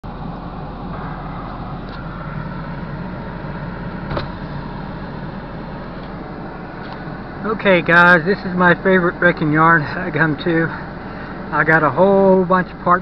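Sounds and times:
vehicle engine running: 0.0 - 13.0.

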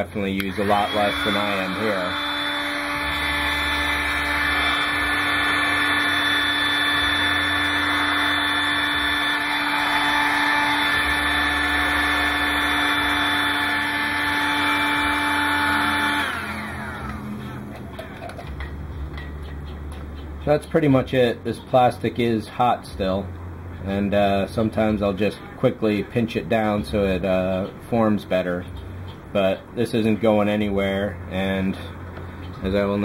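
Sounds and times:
hot air gun fan whirring: 0.0 - 33.0.

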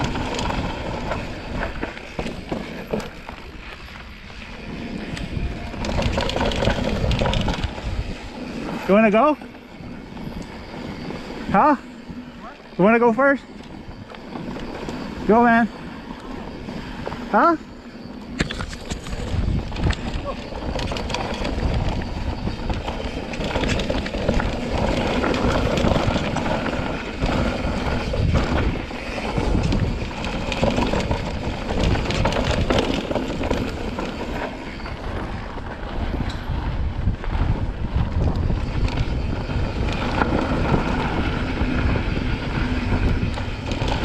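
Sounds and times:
bike rattling over bumps: 0.0 - 44.0
wind buffeting microphone: 0.0 - 44.0.

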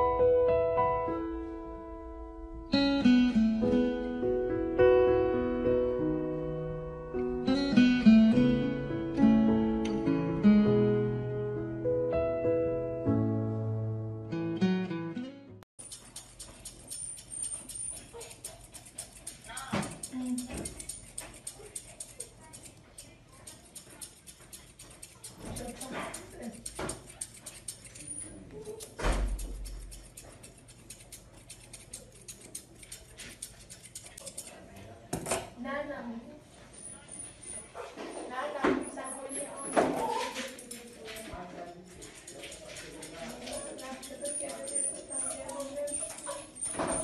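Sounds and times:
grooming scissors snipping: 15.8 - 34.8, 39.8 - 41.3, 41.9 - 47.0.

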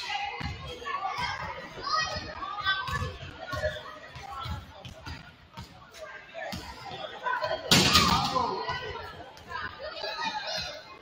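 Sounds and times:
echoing chatter of voices: 0.0 - 11.0.

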